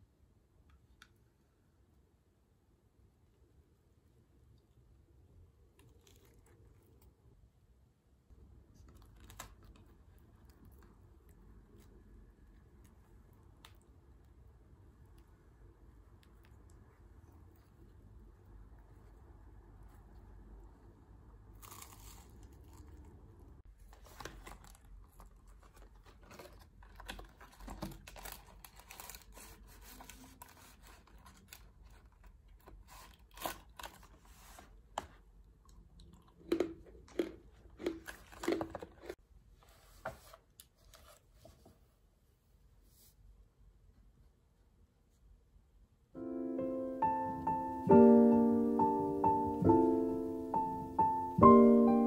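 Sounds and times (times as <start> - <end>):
packaging rustling: 23.8 - 34.7
packaging crackling: 23.9 - 34.5.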